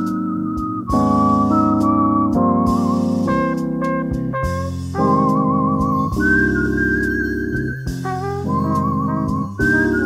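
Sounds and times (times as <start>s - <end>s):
bass line: 0.0s - 10.0s
electric piano chords: 0.0s - 10.0s
high melody with vibrato: 0.0s - 10.0s.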